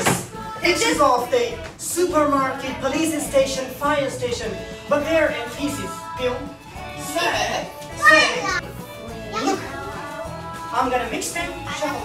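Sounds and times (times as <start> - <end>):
background music: 0.0 - 12.0
children's voices: 7.9 - 8.7, 9.3 - 9.9
child calling high-pitched: 8.0 - 8.6.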